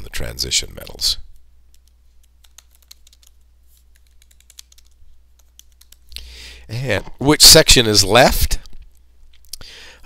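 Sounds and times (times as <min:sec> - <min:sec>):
low steady hum: 0:00.0 - 0:10.0
keyboard typing: 0:01.7 - 0:06.2.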